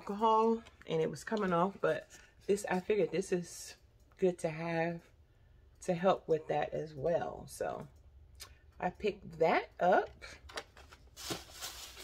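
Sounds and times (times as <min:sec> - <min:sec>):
packaging crinkling: 0:10.7 - 0:12.0.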